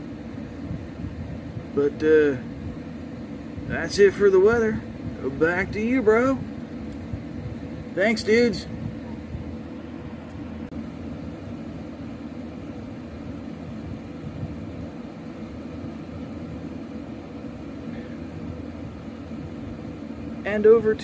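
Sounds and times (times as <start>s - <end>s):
low room rumble with hum: 0.0s - 21.0s.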